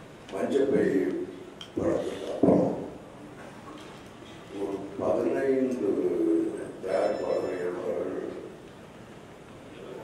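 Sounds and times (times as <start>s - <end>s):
man speaking over loudspeaker: 0.3s - 2.9s, 4.5s - 8.5s.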